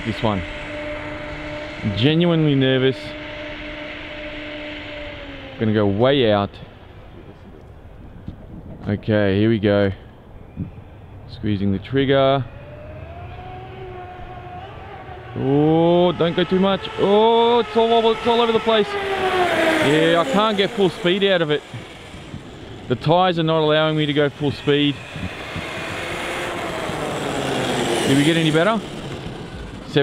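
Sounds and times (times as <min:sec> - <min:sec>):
electric motor whining: 0:00.0 - 0:07.2, 0:12.4 - 0:30.0
tyre noise on asphalt: 0:19.5 - 0:30.0.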